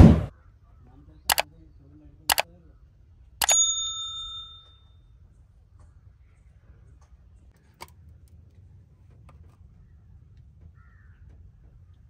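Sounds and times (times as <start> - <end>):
bright bell ding: 3.4 - 4.8.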